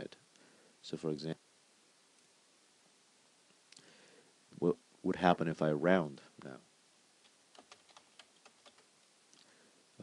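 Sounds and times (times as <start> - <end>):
keyboard typing: 7.5 - 8.9.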